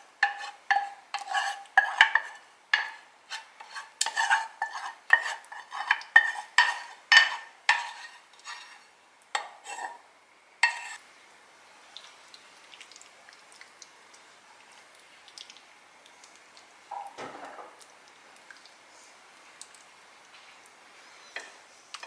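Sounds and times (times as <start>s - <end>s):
wooden spoon scraping sauce: 0.2s - 8.9s, 9.6s - 10.0s, 10.6s - 11.0s.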